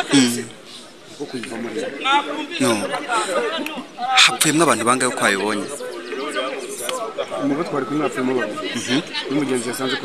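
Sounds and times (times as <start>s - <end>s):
man speaking: 0.0s - 0.6s, 4.1s - 5.8s.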